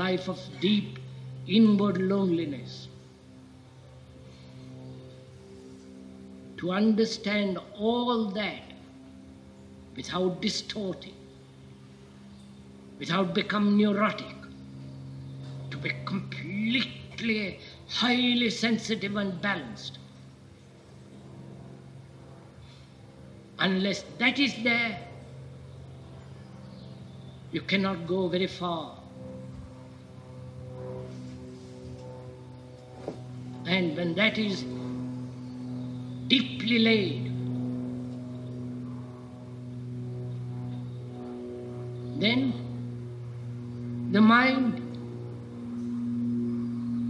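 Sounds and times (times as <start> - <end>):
low tape hum: 0.0 - 47.0.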